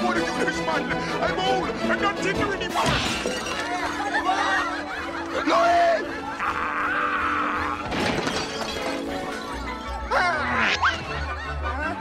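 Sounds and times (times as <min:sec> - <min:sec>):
orchestral music: 0:00.0 - 0:12.0
dishes shattering: 0:02.8 - 0:04.0, 0:07.9 - 0:09.5.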